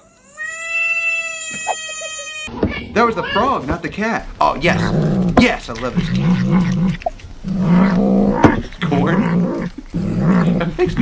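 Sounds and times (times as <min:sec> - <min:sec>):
cat growling: 0:04.6 - 0:11.0
cat chewing crunches: 0:04.8 - 0:11.0.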